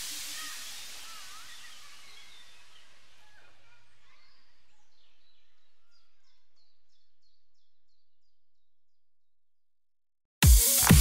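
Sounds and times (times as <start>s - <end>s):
faint high bird-like chirps: 0.0s - 8.8s.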